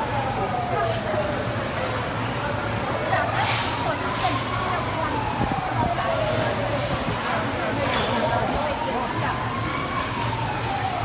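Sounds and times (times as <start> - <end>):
emergency siren wailing: 0.0 - 11.0.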